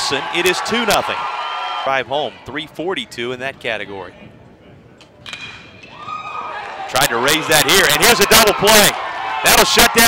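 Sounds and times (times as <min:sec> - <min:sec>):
quiet ballpark background: 0:00.0 - 0:10.0.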